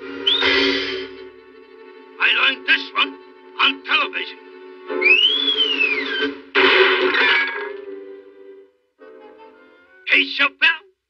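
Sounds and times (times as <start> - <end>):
cartoon whoosh with whistle: 5.1 - 6.4.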